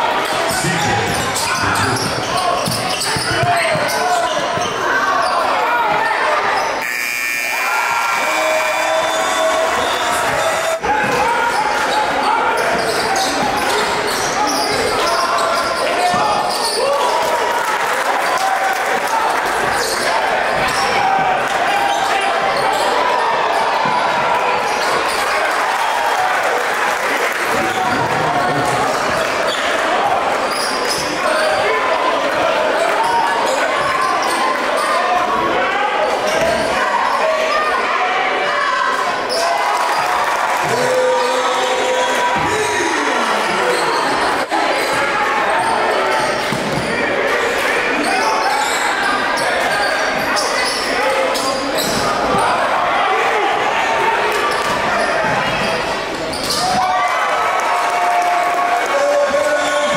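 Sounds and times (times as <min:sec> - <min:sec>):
indistinct crowd voices: 0:00.0 - 0:59.9.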